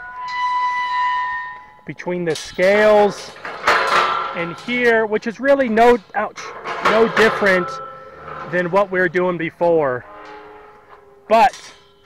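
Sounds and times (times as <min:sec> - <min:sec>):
metal gate hinge squealing: 0:00.0 - 0:12.0.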